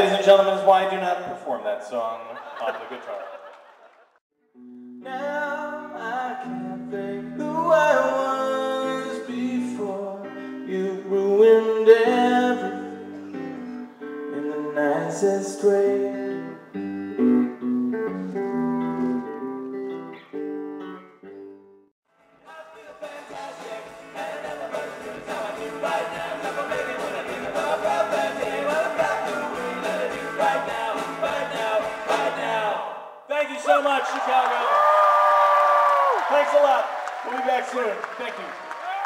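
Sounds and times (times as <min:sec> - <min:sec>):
man singing: 0:05.0 - 0:13.2, 0:14.2 - 0:16.7, 0:22.4 - 0:33.0
strummed acoustic guitar: 0:22.4 - 0:32.6
rock band playing: 0:23.2 - 0:32.4.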